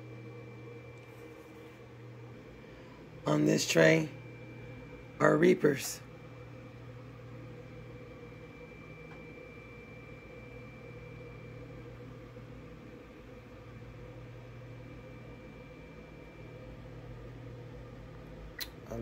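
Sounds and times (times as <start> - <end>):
appliance motor humming: 0.0 - 19.0
faint high-pitched whine: 0.0 - 19.0.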